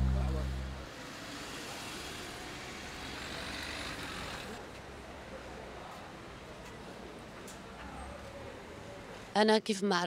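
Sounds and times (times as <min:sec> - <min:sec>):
passing traffic hum: 0:00.0 - 0:05.3.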